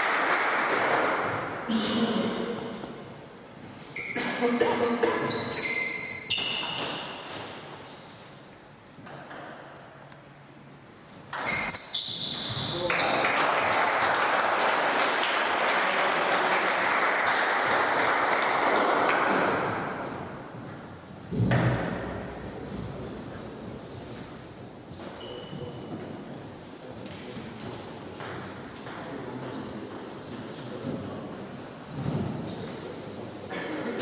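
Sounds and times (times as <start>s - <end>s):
spectators applauding: 12.8s - 19.2s.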